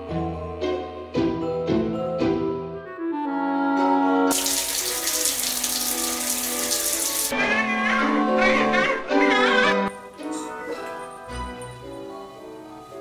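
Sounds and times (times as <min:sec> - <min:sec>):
background music: 0:00.0 - 0:13.0
running water: 0:04.3 - 0:07.4.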